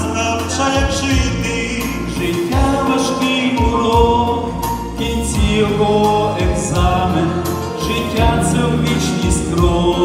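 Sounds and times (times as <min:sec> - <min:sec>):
instrumental accompaniment with beat: 0:00.0 - 0:10.0
male vocal group singing: 0:00.0 - 0:10.0.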